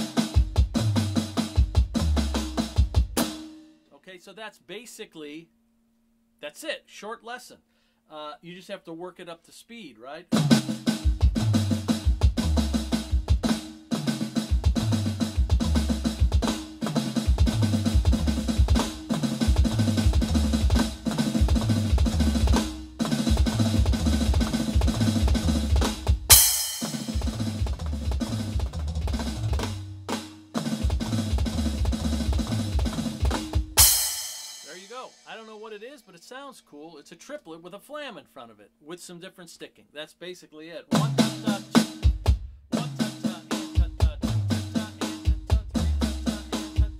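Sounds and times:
bass drum kicks: 0.0 - 3.3, 11.1 - 13.6, 14.5 - 16.6, 17.3 - 29.9, 30.7 - 34.2, 42.0 - 42.6, 43.8 - 46.9
electronic drum fill: 10.4 - 35.5
crash cymbal hit: 26.3 - 27.3, 33.8 - 35.4.

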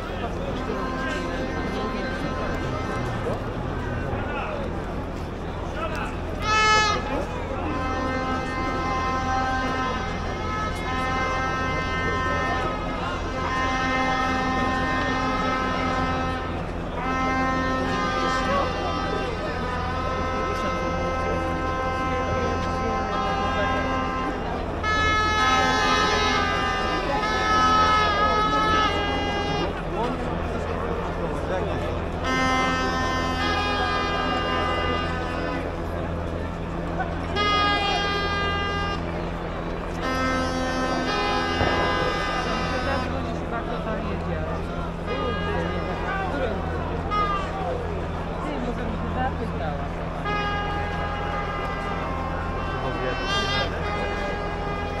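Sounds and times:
crowd noise: 0.0 - 55.0
horns long blasts: 0.0 - 55.0.

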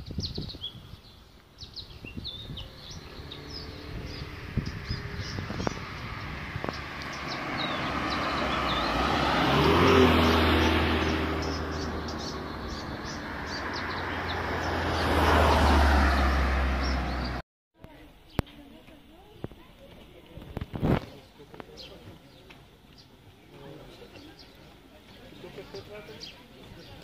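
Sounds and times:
birds chirping: 0.0 - 17.4, 18.0 - 27.0
vehicles passing on road: 1.0 - 18.0.

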